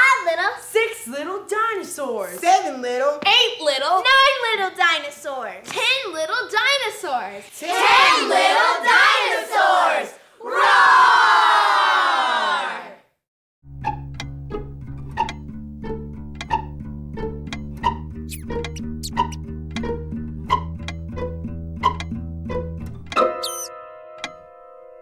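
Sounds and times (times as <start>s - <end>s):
tick-tock beat: 13.7s - 23.2s
plucked strings: 13.7s - 23.6s
high rising squeaks: 16.5s - 19.5s, 23.3s - 23.7s.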